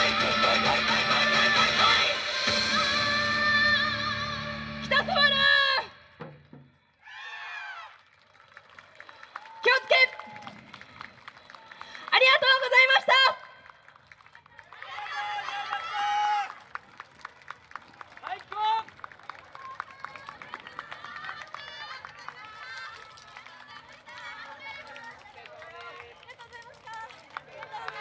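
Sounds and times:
calls and chatter: 17.7 - 28.0.

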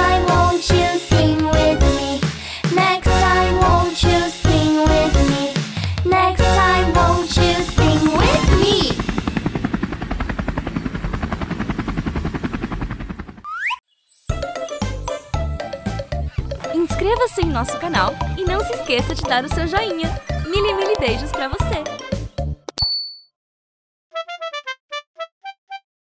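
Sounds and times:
cartoon background music: 0.0 - 9.3, 13.5 - 22.7, 24.1 - 25.8
helicopter rotor chopping: 6.4 - 13.5
short high bell ding: 22.8 - 23.3.

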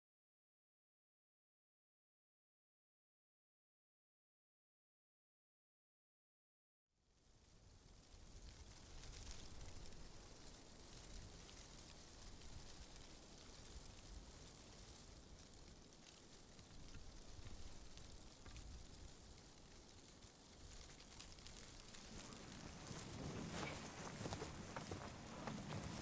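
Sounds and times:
soft even hiss: 7.0 - 26.0.

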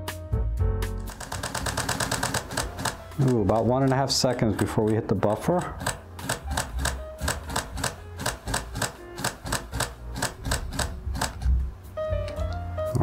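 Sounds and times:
camera shutter burst clicks: 1.0 - 3.5, 5.8 - 11.5.

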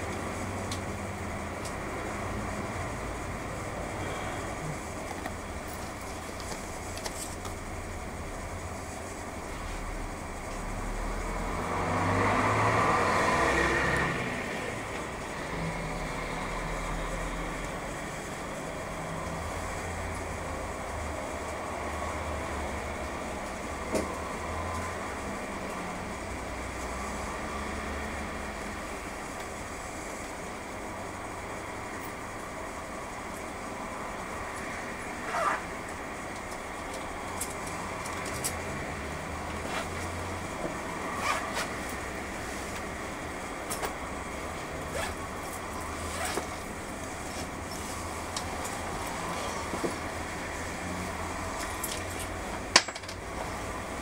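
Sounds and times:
traffic passing: 0.0 - 54.0.

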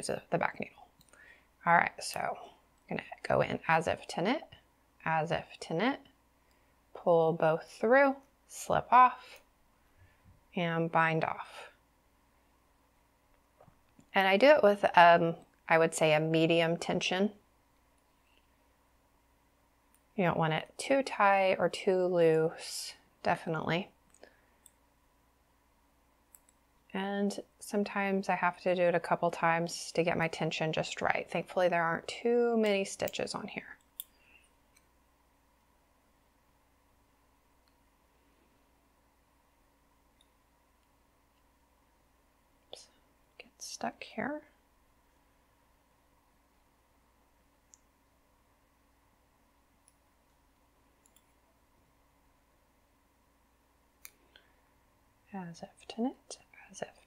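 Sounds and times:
knitting needles clicking: 26.3 - 26.9, 49.8 - 51.4.

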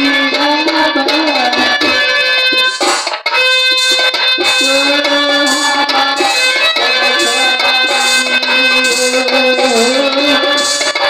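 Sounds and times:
keyboard holding reedy chords: 0.0 - 11.0.

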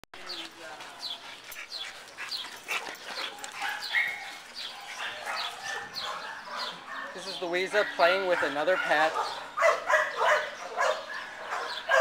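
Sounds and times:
dog barking: 3.2 - 12.0.

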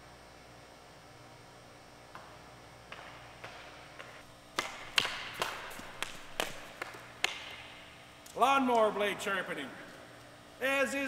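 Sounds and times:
hockey stick striking puck: 2.9 - 7.8.

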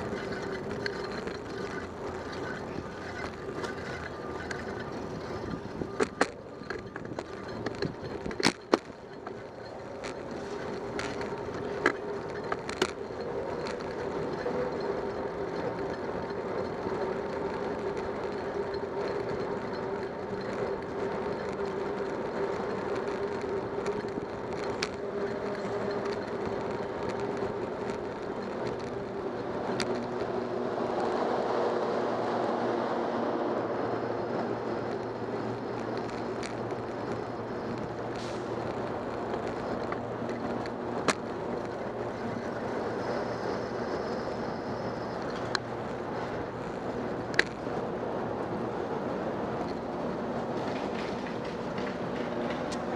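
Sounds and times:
bicycle clicks and rattles: 0.0 - 52.9
tyre and road rumble: 0.0 - 52.9.

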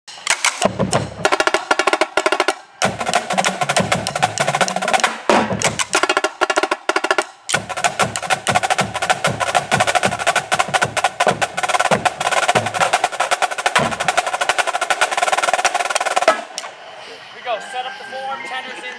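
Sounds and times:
low drum notes: 0.1 - 16.7
marching drumline playing: 0.2 - 16.7.

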